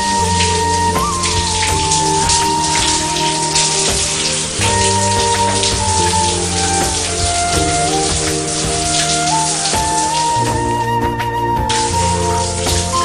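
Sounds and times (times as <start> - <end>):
shower water spraying: 0.0 - 13.0
slow melody of held notes: 0.0 - 13.0.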